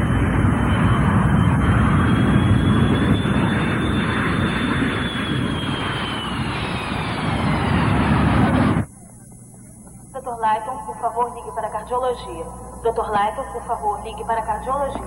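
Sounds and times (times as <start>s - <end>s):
jet airliner engines whining: 0.0s - 15.0s.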